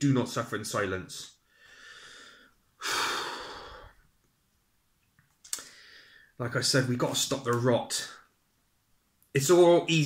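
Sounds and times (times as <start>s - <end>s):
man breathing in softly: 1.4s - 4.1s, 5.6s - 6.4s
man heavy sigh: 1.7s - 4.0s.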